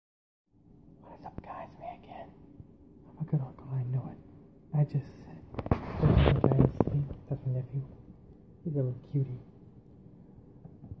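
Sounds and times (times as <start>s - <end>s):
person whispering: 1.0s - 2.5s, 3.1s - 4.2s.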